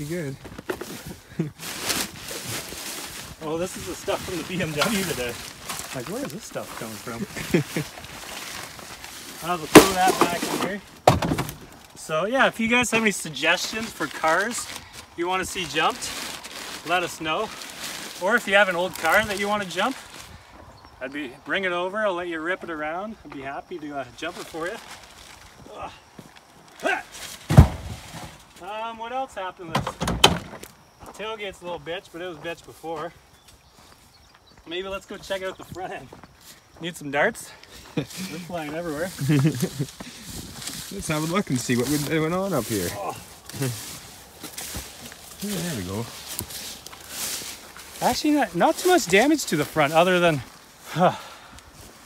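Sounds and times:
footsteps rustling through tall grass: 0.0s - 11.0s, 12.9s - 21.0s, 24.0s - 28.5s, 32.3s - 52.0s
person laughing: 7.1s - 8.0s, 37.9s - 40.0s.

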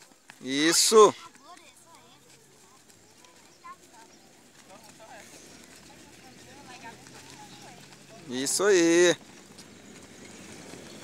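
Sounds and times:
distant boys talking and calling: 0.0s - 11.0s.

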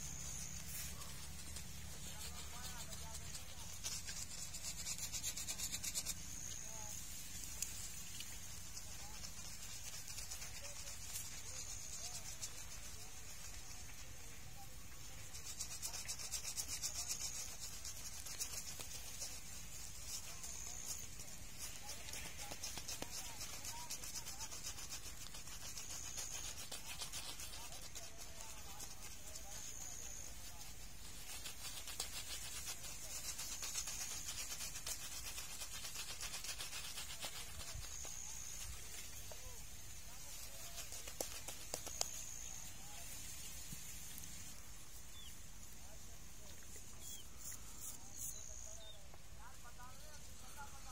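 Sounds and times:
brush rubbing lather into stubble: 0.0s - 50.9s.

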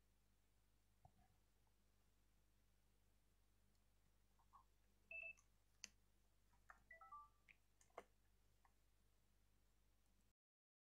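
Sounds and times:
soft clicks: 6.6s - 8.8s.

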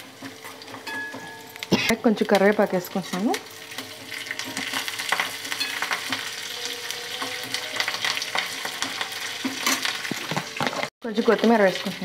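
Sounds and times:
hot oil sizzling and popping: 0.0s - 12.0s
steel spoon stirring in pan: 3.0s - 10.6s.

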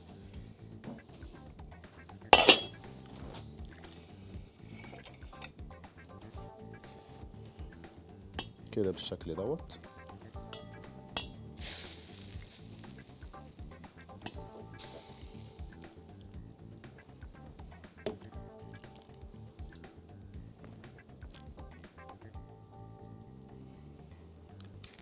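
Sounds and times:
soup pouring into bowl: 11.6s - 13.0s.

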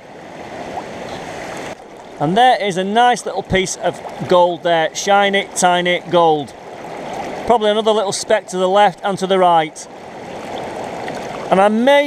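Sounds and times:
stream water rushing over stones: 0.0s - 12.0s.

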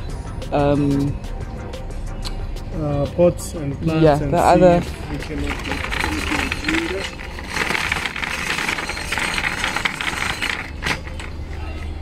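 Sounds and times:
wheels rattling over concrete: 4.4s - 12.0s.

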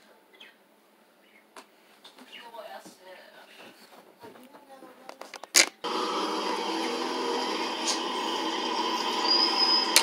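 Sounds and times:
thin high whine: 5.8s - 10.0s.

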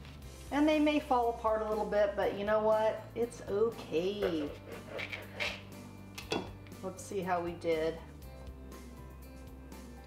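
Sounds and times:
quiet background music: 0.0s - 10.0s
serrated knife sawing tortilla: 4.2s - 5.7s.

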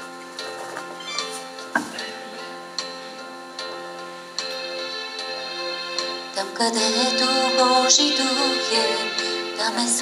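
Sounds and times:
worship music on electronic keyboard: 0.0s - 10.0s.

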